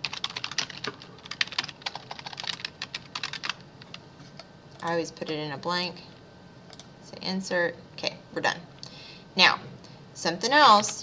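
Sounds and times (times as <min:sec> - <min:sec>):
computer keyboard typing: 0:00.0 - 0:04.0.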